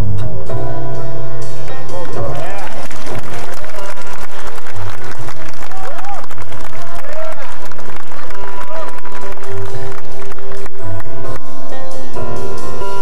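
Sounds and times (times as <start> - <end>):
audience applause and cheering: 1.9 - 11.8.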